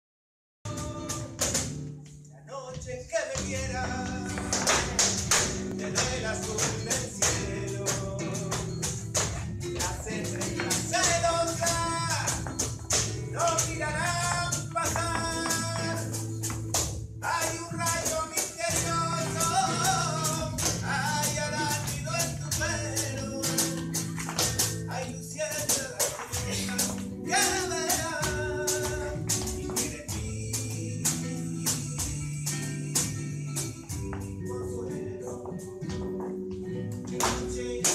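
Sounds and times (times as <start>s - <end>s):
person singing: 0.7s - 1.6s, 2.4s - 12.5s, 17.2s - 24.2s, 24.9s - 35.6s
dancers' footwork strikes: 0.7s - 34.5s, 35.2s - 37.9s
flamenco guitar music: 0.7s - 37.9s
handclaps: 3.4s - 24.9s, 25.5s - 33.7s, 37.1s - 37.9s.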